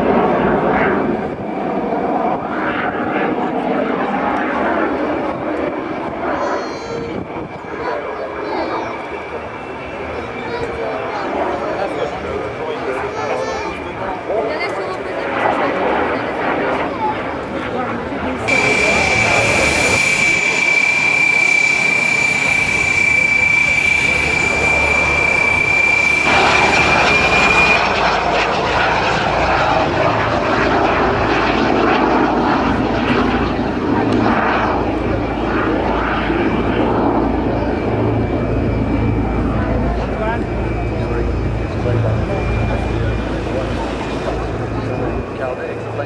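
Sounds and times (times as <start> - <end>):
jet aircraft passing: 0.0 - 46.0
high-pitched turbine whistle: 5.6 - 14.2, 18.4 - 46.0.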